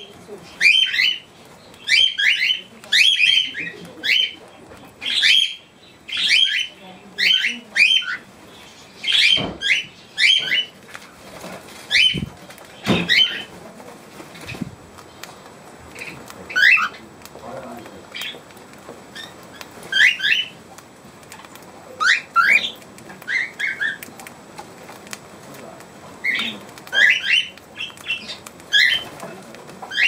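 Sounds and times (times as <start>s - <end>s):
cockatiel whistled calls: 19.9s - 20.5s.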